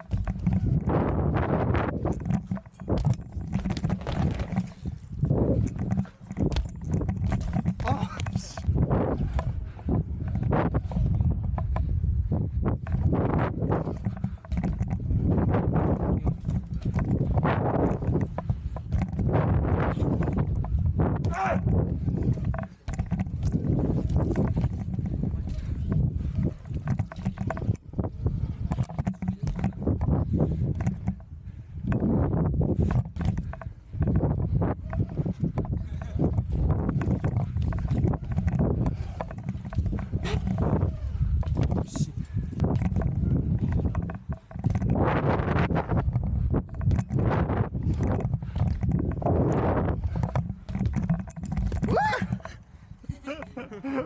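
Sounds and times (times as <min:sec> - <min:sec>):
bike tyres rolling on wood: 0:00.0 - 0:54.0
wind rumble on microphone: 0:00.0 - 0:54.0.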